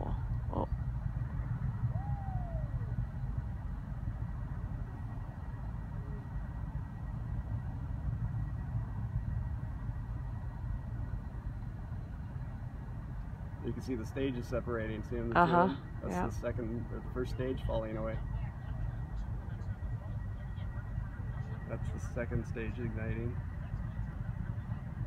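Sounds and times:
distant rocket engine rumble: 0.0s - 25.0s.

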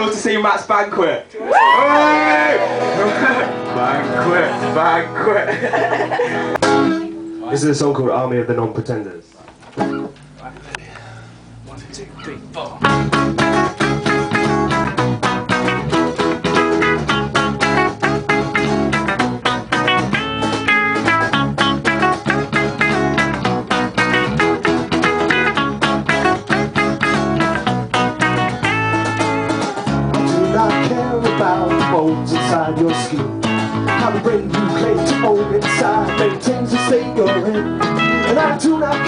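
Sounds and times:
electric guitar playing: 1.8s - 8.4s, 11.5s - 39.0s
acoustic guitar strumming: 2.5s - 8.2s, 12.1s - 39.0s.

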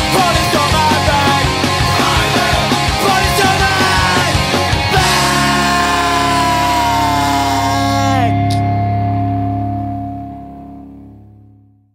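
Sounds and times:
drums: 0.0s - 9.7s
distorted electric guitar chord ringing: 0.0s - 11.9s.

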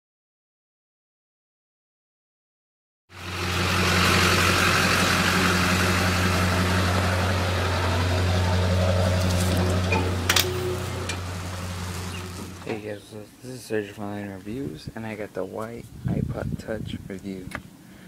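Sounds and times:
pump engine humming: 3.2s - 12.8s.

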